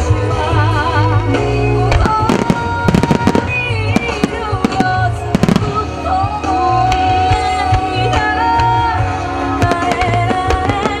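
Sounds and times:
loud music: 0:00.0 - 0:11.0
fireworks bursting: 0:01.9 - 0:08.8, 0:09.4 - 0:11.0.

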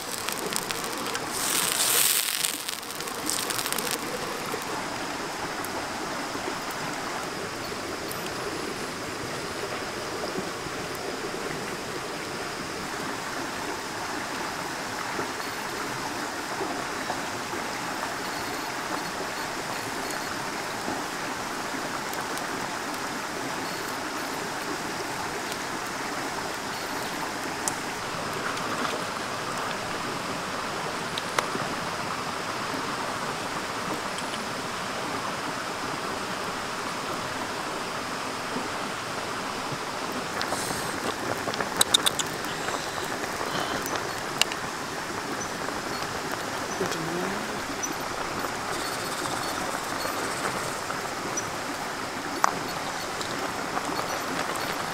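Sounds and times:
sharp clicks: 0:00.0 - 0:04.7, 0:41.0 - 0:44.6
stream rushing over rocks: 0:00.0 - 0:54.9.

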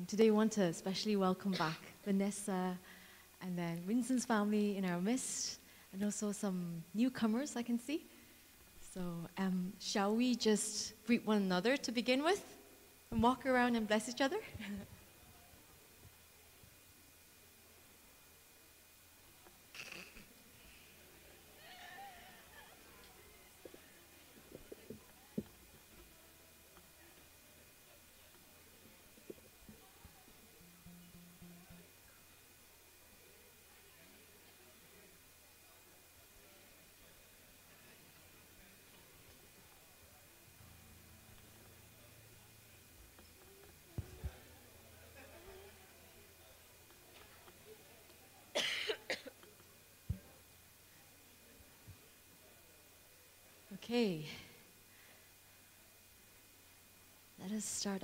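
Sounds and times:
faint room murmur: 0:00.0 - 0:58.0
distant people chatting: 0:19.2 - 0:56.8
person coughing: 0:48.6 - 0:49.3.

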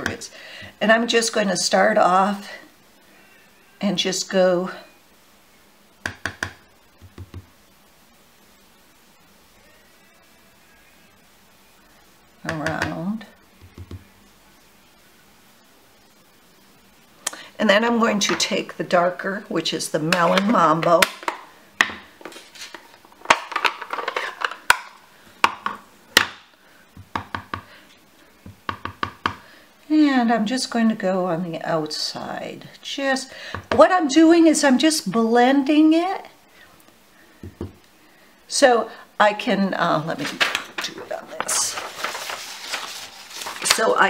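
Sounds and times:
brush tapping on ink pad: 0:06.0 - 0:07.5, 0:13.6 - 0:14.0, 0:28.5 - 0:29.4.

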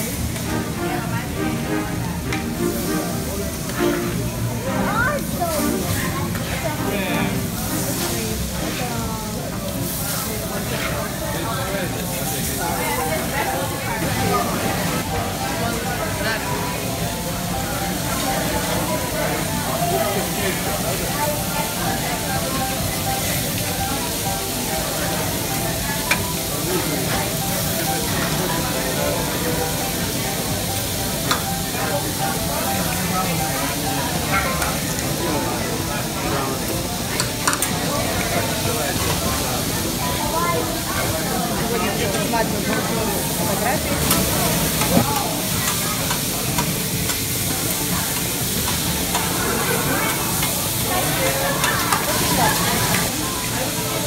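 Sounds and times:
food sizzling on griddle: 0:00.0 - 0:54.0
restaurant chatter: 0:00.0 - 0:54.0.

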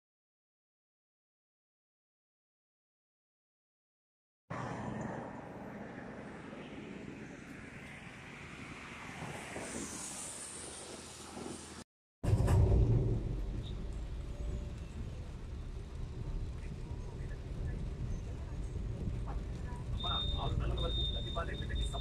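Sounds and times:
tyre hiss on wet road: 0:08.7 - 0:11.8
car rumble in rain from inside: 0:13.2 - 0:22.0.

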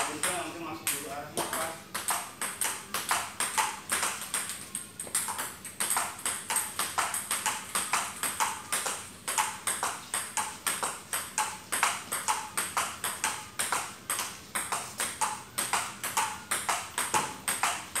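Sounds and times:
table tennis ball clicks: 0:00.0 - 0:18.0.

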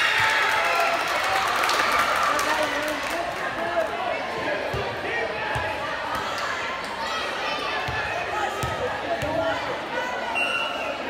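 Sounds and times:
young voices chattering: 0:02.8 - 0:11.0.

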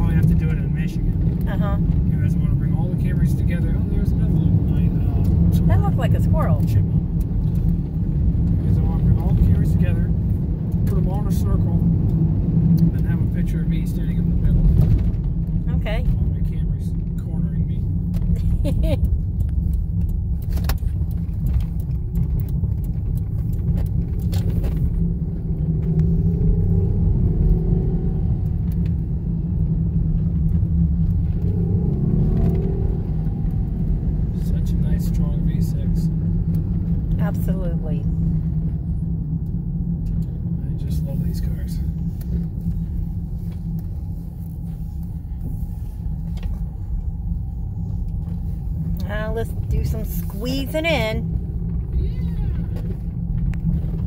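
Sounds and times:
car cabin rumble on gravel road: 0:00.0 - 0:54.0.

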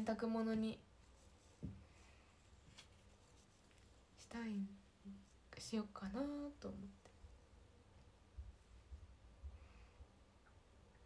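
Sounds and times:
woman speaking: 0:00.0 - 0:00.8, 0:04.2 - 0:07.1.

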